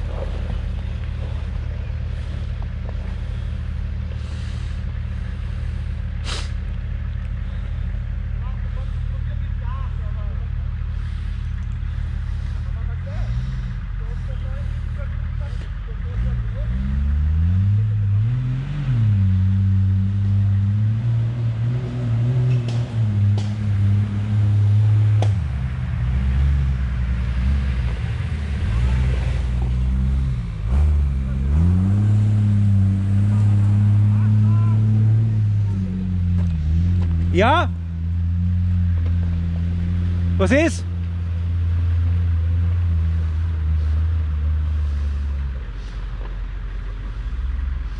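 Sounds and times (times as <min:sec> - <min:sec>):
diesel engine revving on climb: 0:00.0 - 0:47.9.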